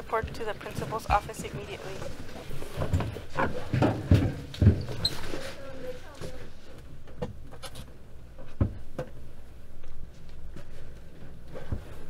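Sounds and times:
dull knocks and thumps: 0.2 - 5.4.

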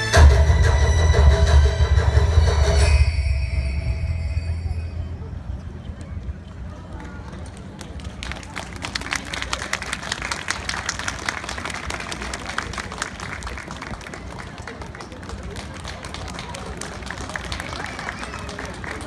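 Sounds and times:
crowd voices: 0.0 - 19.0
audience applause: 6.8 - 19.0.

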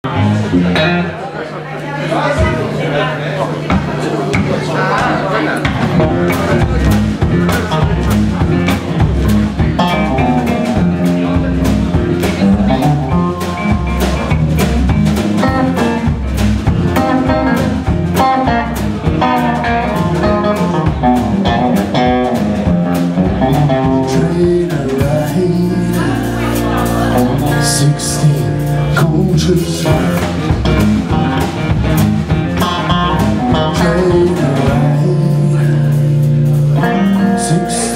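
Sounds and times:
bass guitar: 0.0 - 1.4, 3.5 - 37.9
electric guitar lines: 0.1 - 1.3, 5.6 - 37.9
drum kit steady beat: 3.7 - 37.9.

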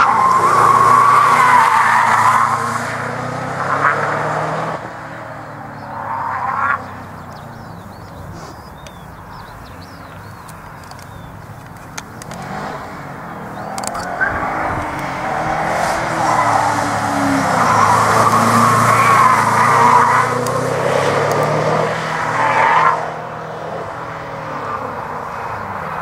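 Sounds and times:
tyres squealing: 0.0 - 3.0, 5.6 - 21.3
car engine driven hard: 0.0 - 26.0.

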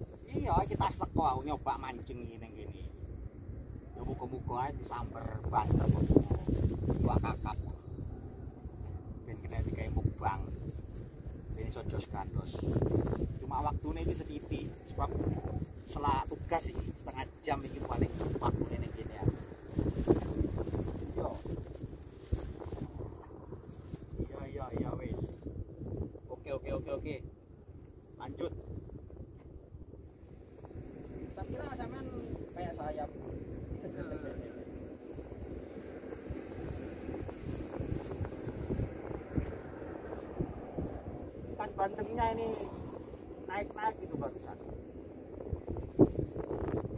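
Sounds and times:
wind buffeting microphone: 0.0 - 46.9.

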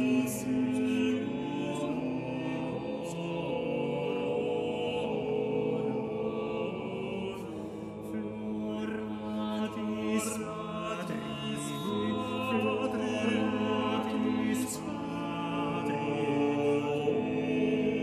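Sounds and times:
vocal ensemble singing polyphony: 0.0 - 18.0.

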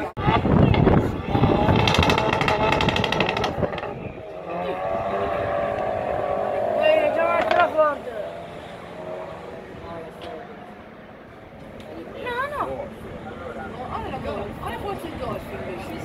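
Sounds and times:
people's voices: 0.0 - 16.0
cars accelerating hard: 1.2 - 11.0.

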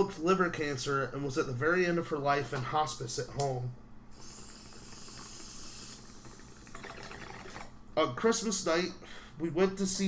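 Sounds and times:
breath drawn in: 4.1 - 7.6.

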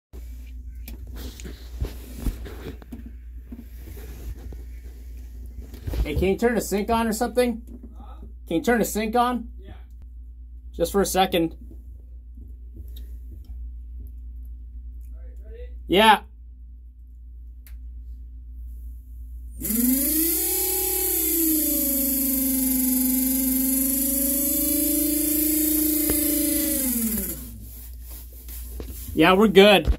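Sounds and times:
steady low hum: 0.2 - 29.9
electric water pump humming: 19.6 - 28.6.

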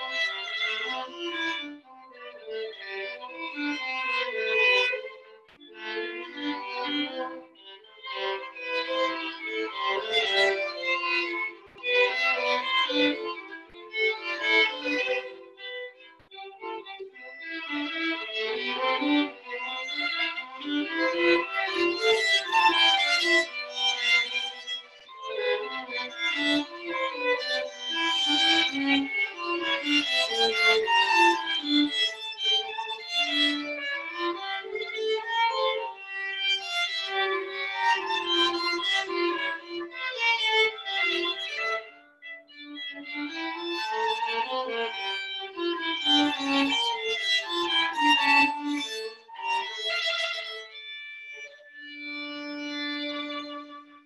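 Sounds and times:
violin duet: 0.0 - 54.0.

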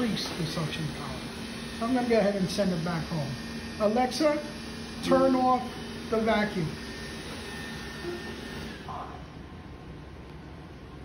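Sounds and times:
robot vacuum whirring: 0.0 - 8.9.

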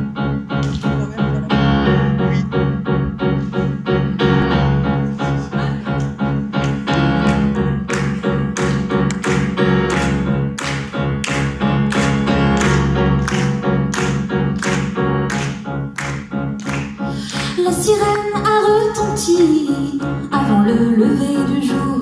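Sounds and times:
grand piano playing: 0.0 - 22.0.

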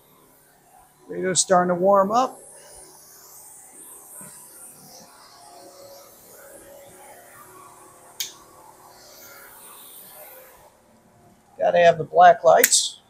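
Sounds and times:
faint music from radios: 0.0 - 13.0.

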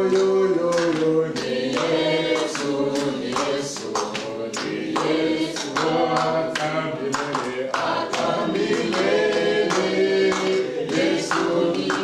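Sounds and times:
congregation singing: 0.0 - 12.0
hand clapping: 0.0 - 12.0.

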